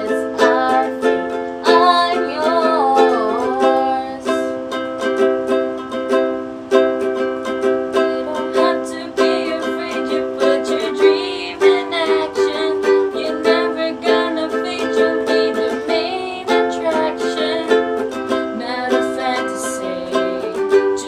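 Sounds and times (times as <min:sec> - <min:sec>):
ukulele strumming: 0:00.0 - 0:21.0
women singing a pop song: 0:08.1 - 0:17.8, 0:18.5 - 0:21.0.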